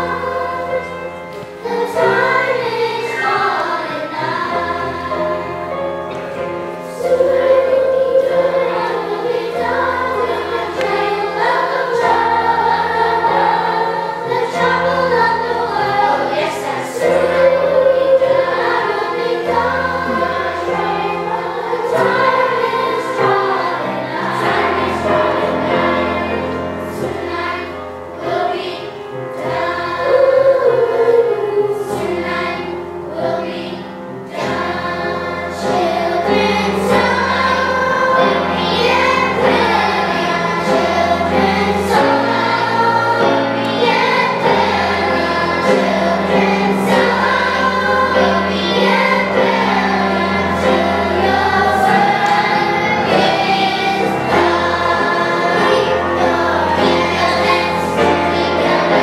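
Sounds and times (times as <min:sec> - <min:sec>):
children's chorus singing: 0:00.0 - 0:59.0
low held accompaniment notes: 0:00.0 - 0:59.0.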